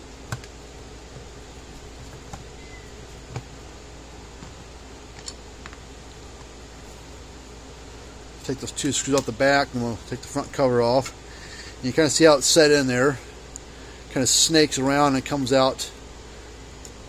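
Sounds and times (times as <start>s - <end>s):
background hiss and hum: 0.0s - 17.0s.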